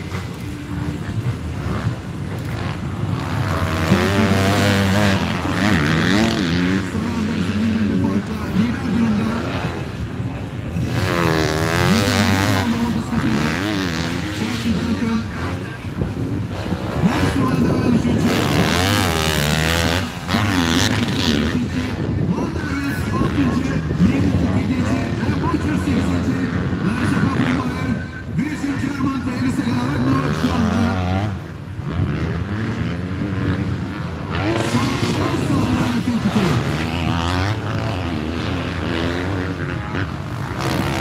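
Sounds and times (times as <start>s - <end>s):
motocross bike engines revving: 0.0s - 41.0s.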